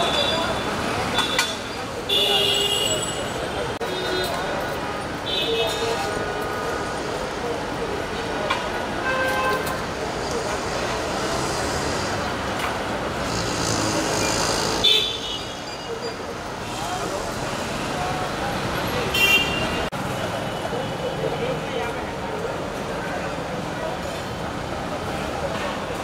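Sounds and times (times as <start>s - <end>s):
traffic noise: 0.0s - 26.0s.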